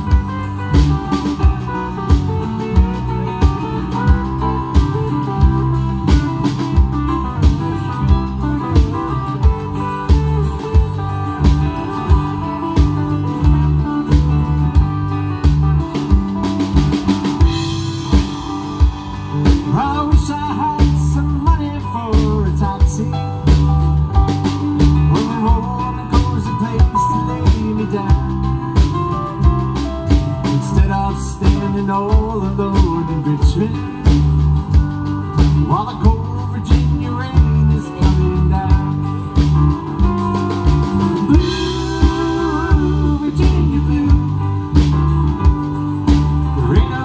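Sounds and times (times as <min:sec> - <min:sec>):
electric guitar lead with bent notes: 0:00.0 - 0:47.0
rock band playing live: 0:00.0 - 0:47.0.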